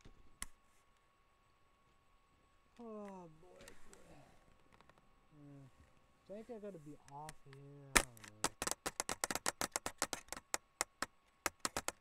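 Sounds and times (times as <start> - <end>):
sharp clicks and taps: 7.1 - 12.0.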